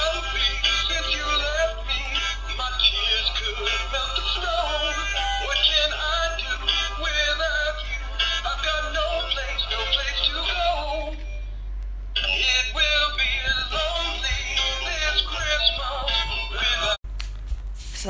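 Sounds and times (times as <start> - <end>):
man singing christmas song: 0.0 - 11.2, 12.2 - 17.0.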